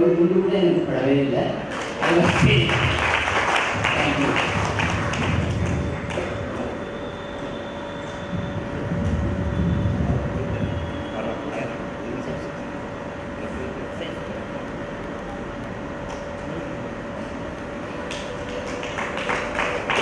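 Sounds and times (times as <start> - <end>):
constant hum: 0.0 - 20.0
microphone handling rumble: 8.3 - 11.0.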